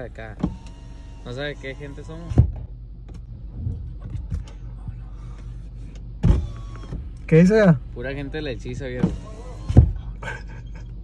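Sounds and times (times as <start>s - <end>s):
steady low hum: 0.0s - 11.0s
car power window running: 0.2s - 4.6s, 5.4s - 7.8s, 8.8s - 10.1s.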